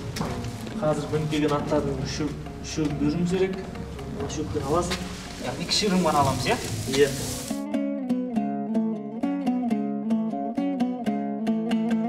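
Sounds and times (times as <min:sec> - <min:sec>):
dry hay rustling and crackling: 0:04.5 - 0:07.6.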